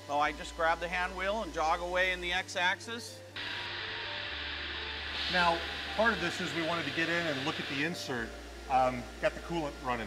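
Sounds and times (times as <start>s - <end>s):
soft background music: 0.0s - 10.0s
coolant spraying hiss: 3.4s - 10.0s.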